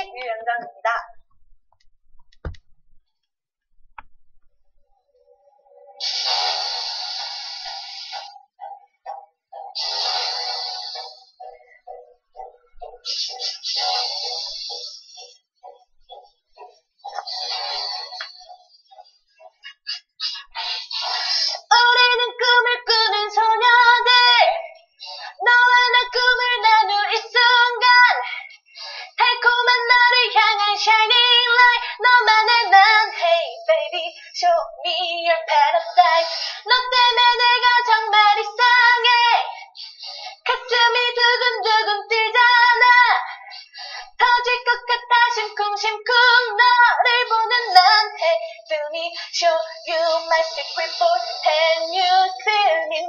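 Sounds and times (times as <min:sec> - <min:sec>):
woman singing: 0:00.0 - 0:01.0, 0:20.5 - 0:53.0
low thump: 0:02.2 - 0:02.7.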